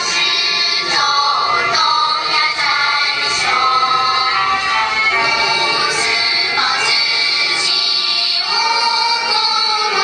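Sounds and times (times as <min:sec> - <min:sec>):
musical accompaniment: 0:00.0 - 0:10.0
voices singing an anthem: 0:00.0 - 0:10.0.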